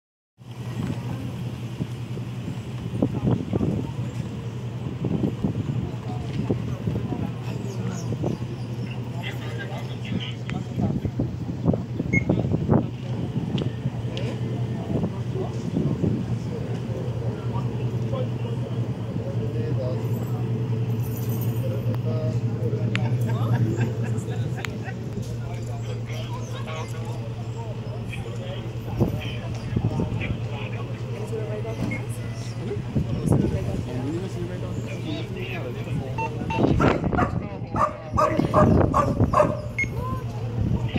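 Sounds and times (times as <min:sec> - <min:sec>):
people talking at a distance: 0:00.5 - 0:40.9
dog barking: 0:36.8 - 0:39.8.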